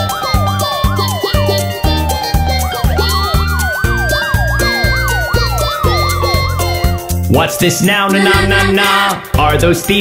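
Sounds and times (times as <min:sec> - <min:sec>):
slow wailing tone: 0:00.0 - 0:06.9
fast yelping siren: 0:00.0 - 0:07.0
background music with steady beat: 0:00.0 - 0:10.0.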